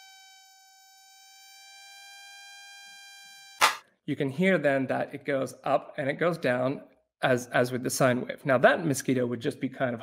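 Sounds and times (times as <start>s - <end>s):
synthesized mosquito whine: 0.0s - 3.8s
short sharp noise: 3.6s - 3.8s.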